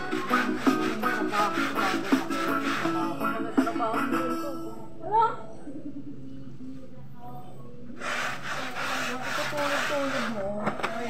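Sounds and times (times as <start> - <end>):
carpet scrubbed by hand: 0.1 - 3.2, 8.0 - 11.0.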